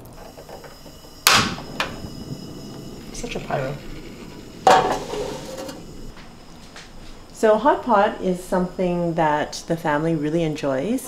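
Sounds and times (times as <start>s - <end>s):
gas burner catching: 0.0s - 11.0s.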